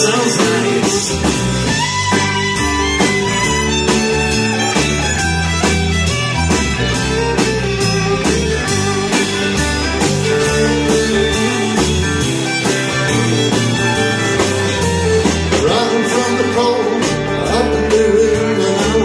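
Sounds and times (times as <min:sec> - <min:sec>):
drum beat: 0:00.0 - 0:16.2
bass: 0:00.0 - 0:19.0
electric guitar: 0:00.0 - 0:19.0.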